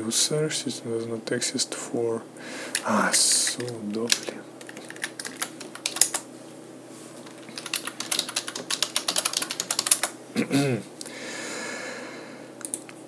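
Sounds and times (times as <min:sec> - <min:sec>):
computer keyboard typing: 0:03.5 - 0:06.2, 0:07.2 - 0:10.2.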